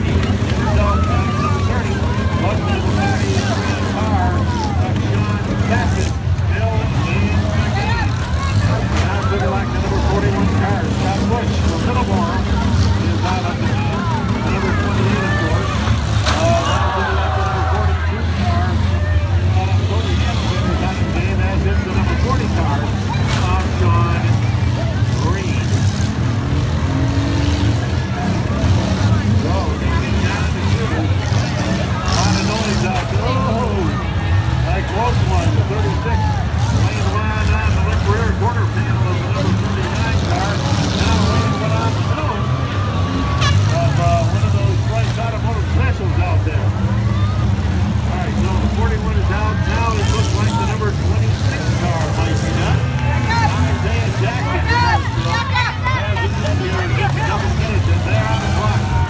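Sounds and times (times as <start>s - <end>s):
car engines revving: 0.0s - 59.0s
crowd shouting and cheering: 0.0s - 59.0s.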